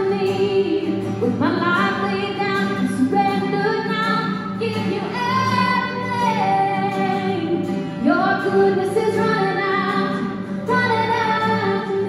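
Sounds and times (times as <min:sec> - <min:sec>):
acoustic guitar: 0:00.0 - 0:12.0
woman singing: 0:00.0 - 0:12.0.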